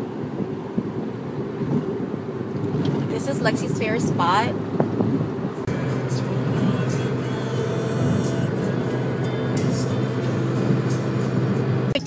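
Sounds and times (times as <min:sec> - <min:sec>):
car road noise: 0:00.0 - 0:12.0
music on car stereo: 0:03.1 - 0:12.0.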